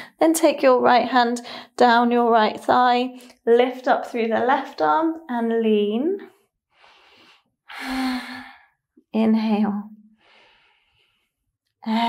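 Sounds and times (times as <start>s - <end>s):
woman breathing in: 6.7s - 8.8s, 10.2s - 11.4s.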